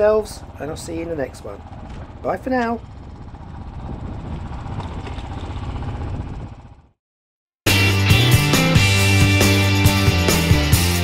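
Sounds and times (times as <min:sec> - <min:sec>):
motorcycle engine running: 0:00.0 - 0:07.0.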